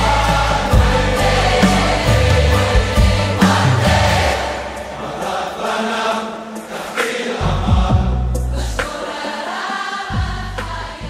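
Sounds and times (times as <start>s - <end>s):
low bass notes: 0.0s - 4.3s
choir singing: 0.0s - 11.0s.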